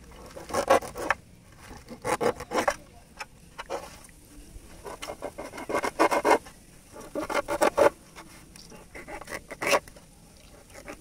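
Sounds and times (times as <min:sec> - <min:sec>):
knife rasping through fish skin: 0:08.8 - 0:10.0.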